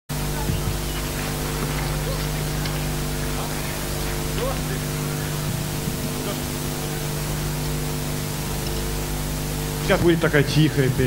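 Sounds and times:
sound system hiss and hum: 0.1 - 11.0
faint audience voices: 0.2 - 10.0.

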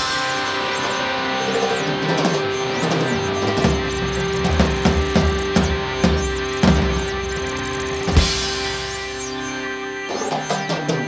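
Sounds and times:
drum kit: 0.0 - 11.0
electric guitar: 0.0 - 11.0
keyboard: 0.0 - 11.0.

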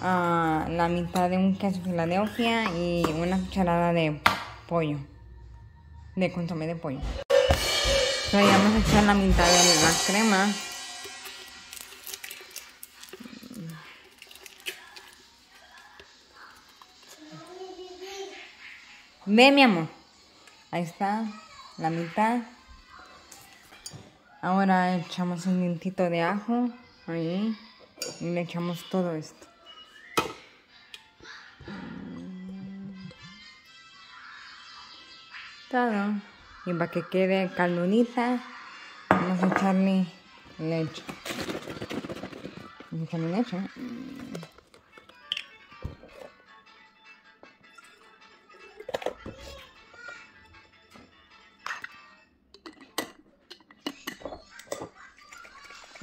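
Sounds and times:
faint background music: 0.0 - 56.0
background music with held note: 7.2 - 13.1
cartons and bottle being handled: 41.0 - 43.0.

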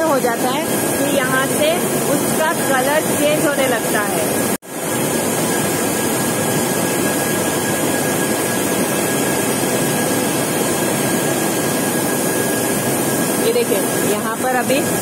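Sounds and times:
machinery running: 0.0 - 15.0
steady high whine: 0.0 - 15.0.

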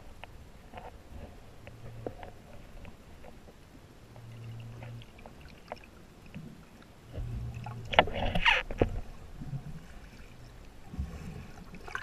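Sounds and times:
faint underwater clicks: 1.6 - 12.0
low underwater rumble: 4.0 - 12.0
churning water and bubbles: 4.1 - 12.0.

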